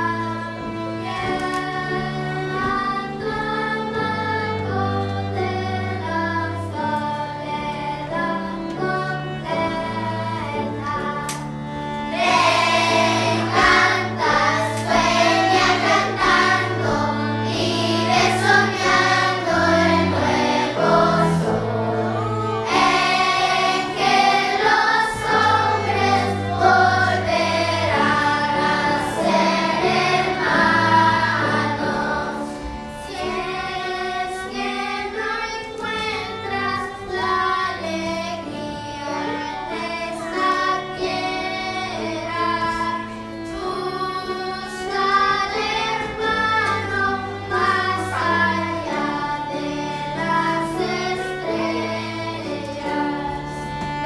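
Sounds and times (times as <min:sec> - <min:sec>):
children singing together: 0:00.0 - 0:54.0
string orchestra: 0:00.0 - 0:54.0.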